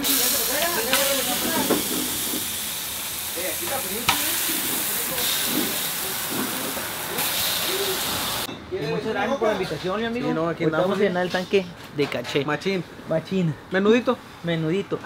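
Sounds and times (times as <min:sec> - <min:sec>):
food sizzling on griddle: 0:00.0 - 0:08.5.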